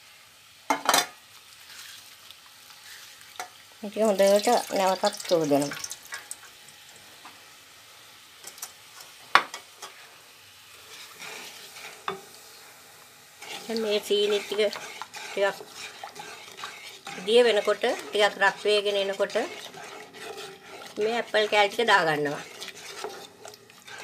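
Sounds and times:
faint sizzle in a wok: 0:00.0 - 0:24.0
wooden spoon scraping a wok: 0:01.6 - 0:03.4, 0:09.8 - 0:24.0
person speaking: 0:13.7 - 0:14.8, 0:21.0 - 0:22.5.

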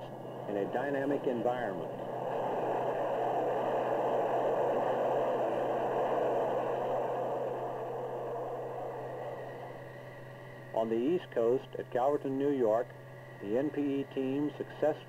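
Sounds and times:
jet passing overhead: 0:00.0 - 0:10.7.

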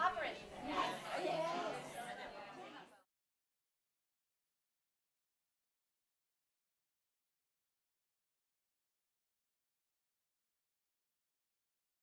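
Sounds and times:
indistinct chatter of voices: 0:00.0 - 0:03.1.

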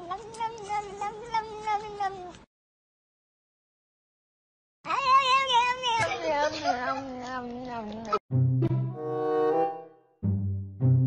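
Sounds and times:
music: 0:08.3 - 0:11.0.

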